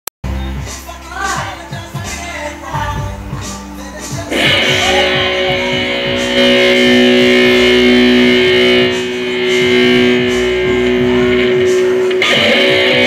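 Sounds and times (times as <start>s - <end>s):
backing music with low pulse: 0.2s - 13.0s
electric guitar sustained notes: 4.3s - 13.0s.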